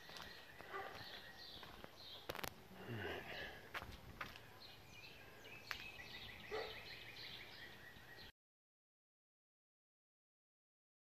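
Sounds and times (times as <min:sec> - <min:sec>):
birds chirping and trilling: 0:00.0 - 0:08.3.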